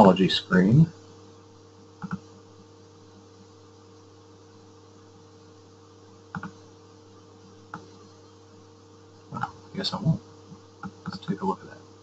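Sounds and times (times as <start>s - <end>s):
low electrical hum: 0.0s - 12.0s
computer mouse clicks: 2.0s - 2.3s, 6.3s - 6.6s, 7.7s - 7.9s, 10.8s - 11.3s.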